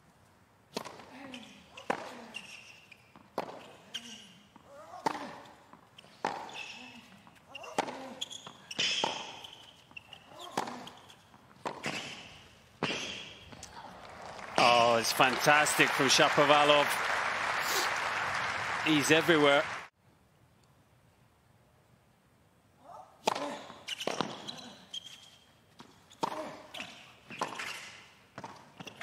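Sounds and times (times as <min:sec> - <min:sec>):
tennis ball bouncing: 0:00.7 - 0:01.1, 0:01.8 - 0:13.6
tennis ball struck by racket: 0:00.7 - 0:01.1, 0:07.6 - 0:09.4, 0:10.4 - 0:10.9, 0:11.6 - 0:13.3, 0:23.2 - 0:24.4.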